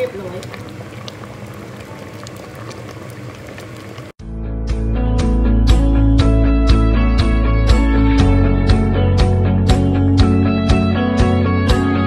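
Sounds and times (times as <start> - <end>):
curry bubbling and popping: 0.0 - 4.2.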